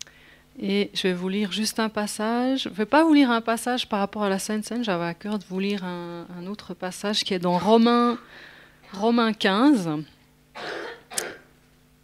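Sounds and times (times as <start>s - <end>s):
woman clearing her throat: 10.6s - 11.5s.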